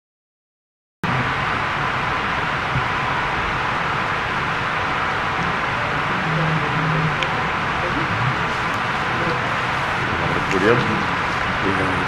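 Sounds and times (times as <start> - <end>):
microphone hiss: 1.0 - 12.0.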